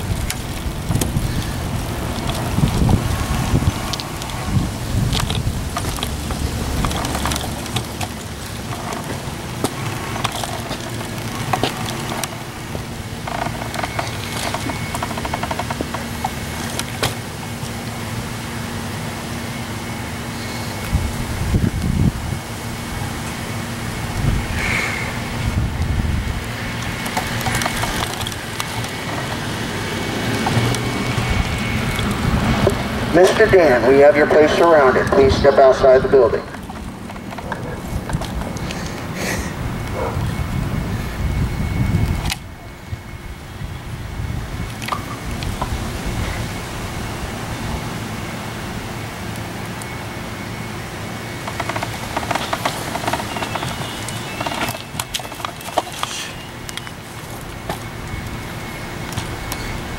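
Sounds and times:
wind rumbling on microphone: 0.0s - 19.0s, 19.9s - 59.9s.

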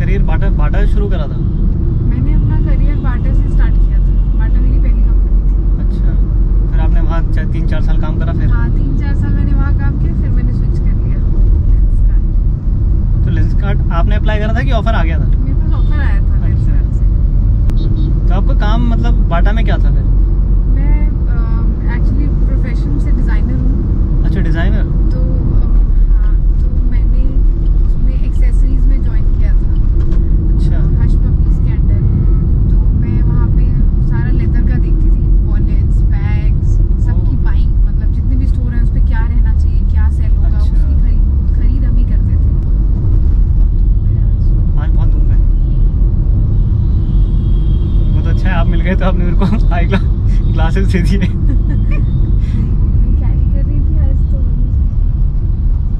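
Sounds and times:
car engine and road rumble: 0.0s - 55.9s.

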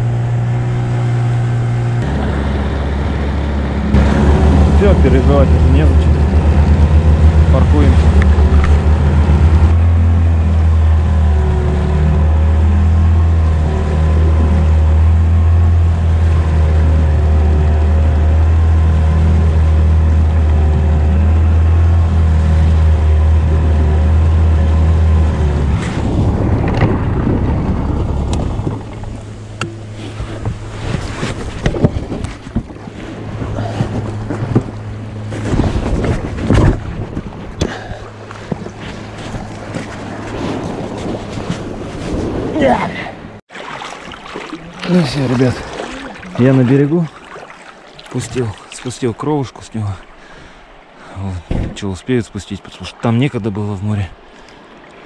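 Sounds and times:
outboard motor running: 0.0s - 49.3s
water knocks and splashes: 25.6s - 42.4s, 43.5s - 50.3s, 51.4s - 52.5s.

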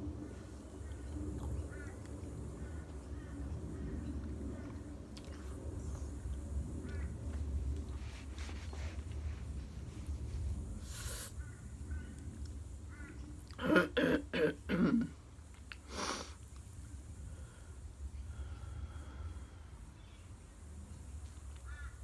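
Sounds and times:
low room hum: 0.0s - 22.0s
woman coughing: 13.6s - 15.1s.

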